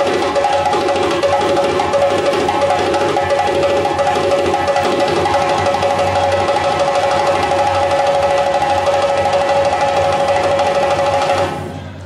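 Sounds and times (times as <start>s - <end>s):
hand drums rolling fast: 0.0s - 11.6s
steady ringing tone: 0.0s - 11.8s.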